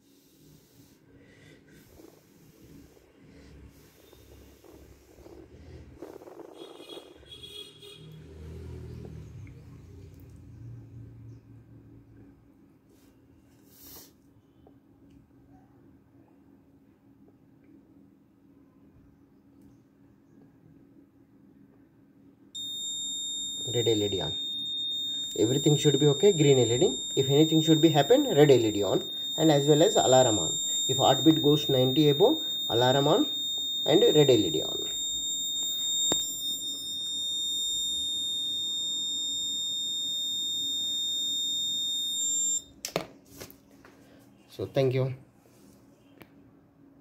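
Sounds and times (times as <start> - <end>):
high-pitched electronic buzzer: 6.0 - 9.2, 22.6 - 42.7.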